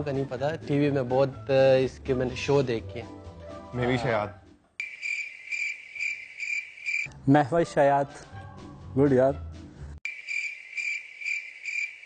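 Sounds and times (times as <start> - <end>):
crickets chirping: 4.8 - 7.1, 10.1 - 12.0.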